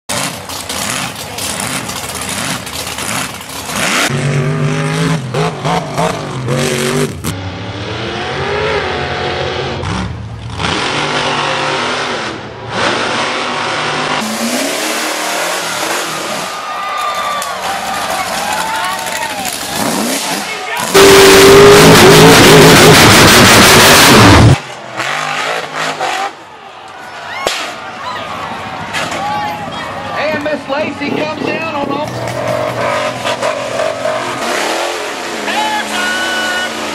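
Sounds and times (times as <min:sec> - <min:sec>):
off-road trucks revving hard: 0:00.1 - 0:16.7, 0:17.6 - 0:26.5, 0:30.2 - 0:36.9.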